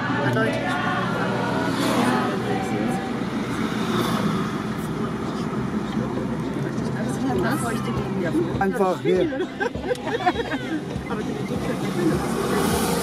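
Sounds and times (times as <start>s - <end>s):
car engine and road drone: 0.0s - 13.0s.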